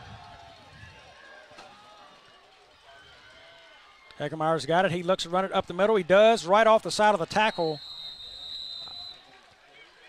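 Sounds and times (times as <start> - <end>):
faint stadium crowd noise: 0.0 - 10.0
referee's whistle blast: 7.4 - 9.2.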